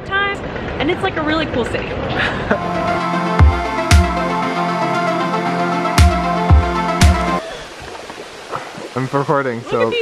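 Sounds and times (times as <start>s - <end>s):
electronic music heavy beat: 2.6s - 7.4s
water rushing from waterfall: 7.4s - 10.0s.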